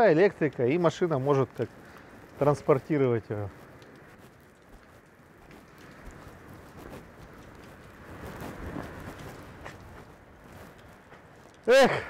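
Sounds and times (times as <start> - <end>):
wind on microphone: 1.5 - 11.4.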